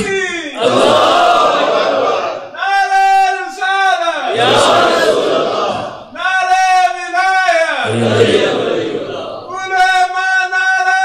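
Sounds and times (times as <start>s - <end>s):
crowd shouting a reply: 0.0s - 3.4s, 4.2s - 6.2s.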